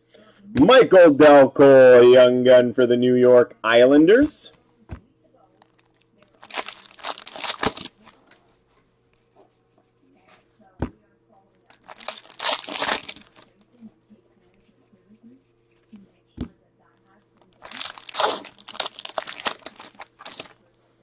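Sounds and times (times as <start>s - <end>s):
foil wrappers tearing and crinkling: 5.6s - 8.4s, 11.6s - 13.6s, 17.4s - 20.6s.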